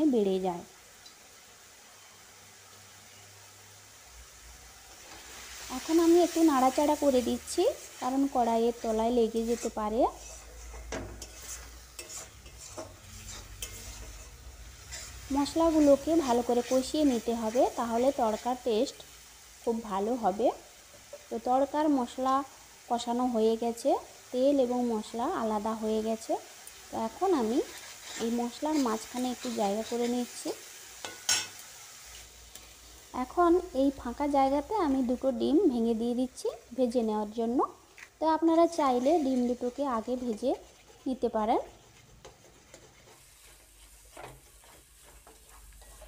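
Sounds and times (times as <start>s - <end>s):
faint sizzle of frying: 0.0s - 46.0s
spatula scraping a pan: 5.0s - 18.6s, 27.2s - 32.8s, 38.8s - 46.0s.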